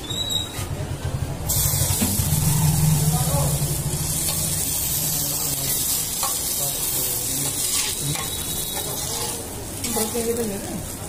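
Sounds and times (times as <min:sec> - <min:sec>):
food sizzling on a griddle: 0:01.5 - 0:11.0.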